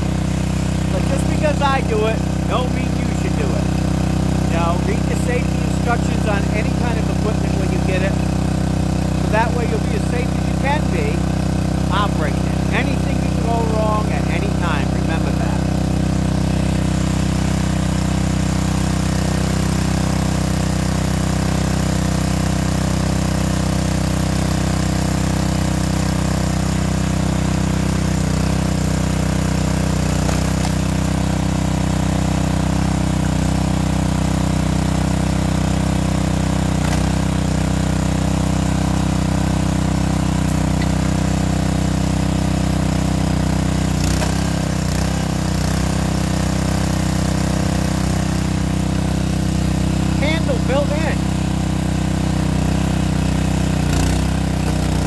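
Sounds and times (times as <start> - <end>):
gas engine running steadily: 0.0 - 55.0.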